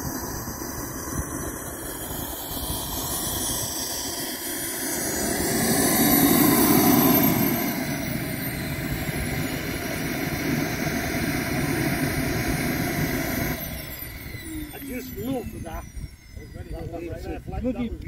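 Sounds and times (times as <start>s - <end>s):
model jet turbine whine: 0.0s - 18.0s.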